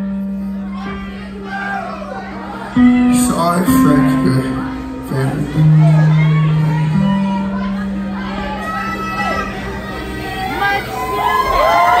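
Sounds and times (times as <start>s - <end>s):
audience cheering and screaming: 0.2s - 12.0s.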